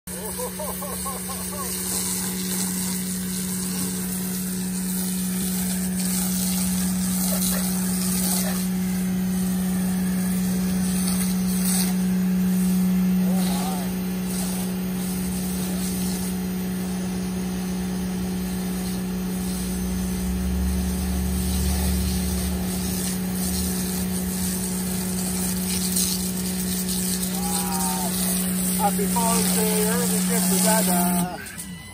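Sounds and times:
pressure washer humming: 0.1s - 31.9s
hiss of foam spray: 0.3s - 16.6s, 17.6s - 31.6s.

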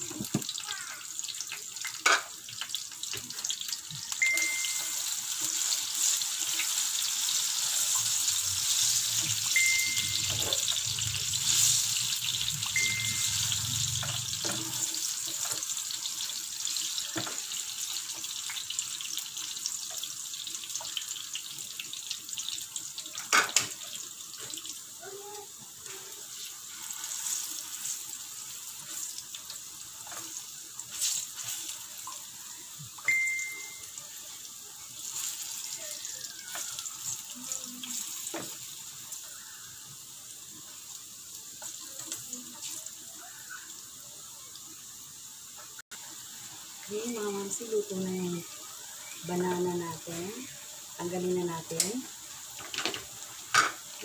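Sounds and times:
banana slices sizzling in pan: 0.0s - 54.0s.

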